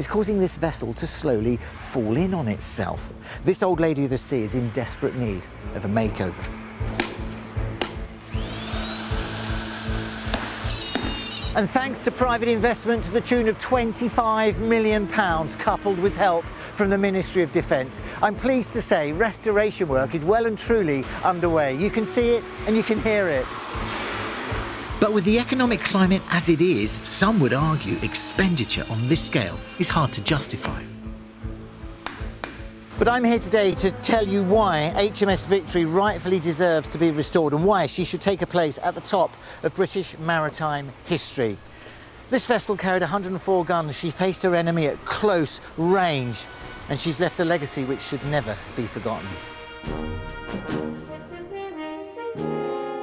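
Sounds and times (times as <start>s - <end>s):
background music: 0.0s - 39.1s, 40.9s - 53.0s
hammer striking metal spike: 7.0s - 7.2s, 7.8s - 8.0s, 32.0s - 32.8s
electric router whining: 8.3s - 11.6s
background music with beat: 28.7s - 35.6s.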